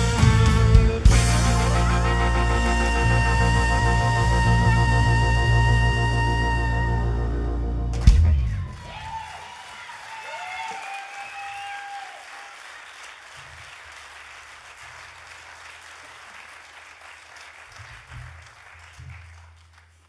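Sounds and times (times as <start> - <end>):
audience applauding: 8.0 - 20.0.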